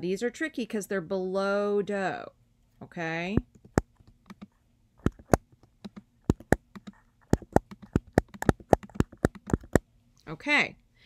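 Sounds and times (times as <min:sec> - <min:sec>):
computer keyboard typing: 0:03.6 - 0:09.8.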